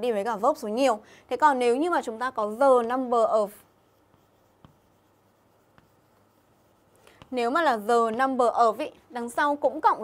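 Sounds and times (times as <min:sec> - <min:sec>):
chalk writing on chalkboard: 0:01.7 - 0:10.0
chalk tapping: 0:01.8 - 0:10.0.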